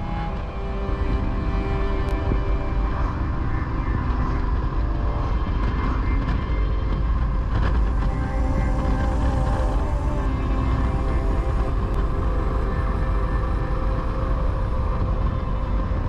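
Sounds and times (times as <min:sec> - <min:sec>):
wind rushing: 0:00.0 - 0:16.0.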